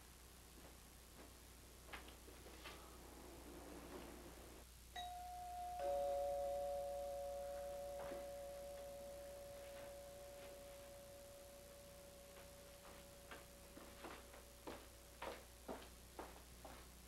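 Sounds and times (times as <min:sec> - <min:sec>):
two-tone doorbell chime: 0:05.0 - 0:13.8.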